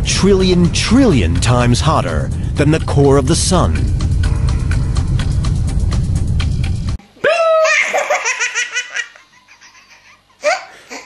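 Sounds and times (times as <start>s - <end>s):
baby laughing: 7.4s - 11.0s.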